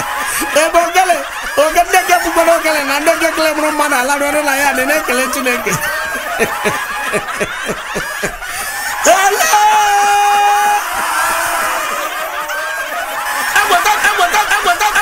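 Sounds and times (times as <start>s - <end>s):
person laughing: 0.4s - 10.7s.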